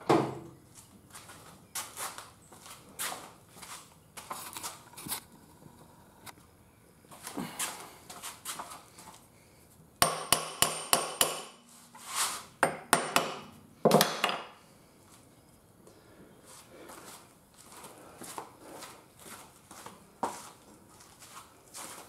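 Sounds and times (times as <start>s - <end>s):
hammer striking metal: 10.0s - 11.6s, 12.6s - 14.5s.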